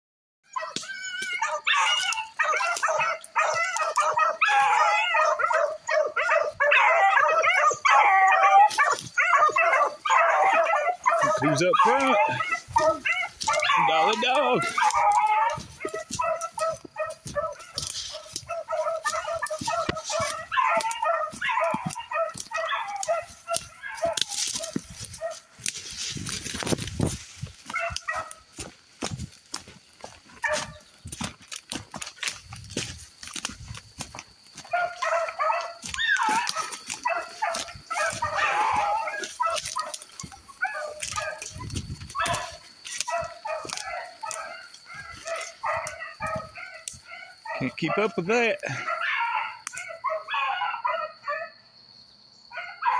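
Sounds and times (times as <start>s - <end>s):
brush crackling: 0.5s - 49.0s
hounds baying: 0.5s - 51.6s, 52.5s - 52.9s
footsteps: 0.6s - 48.9s.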